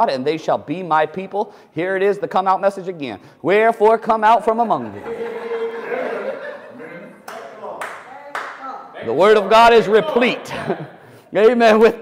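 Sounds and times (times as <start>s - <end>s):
sharp hand claps: 7.2s - 8.8s.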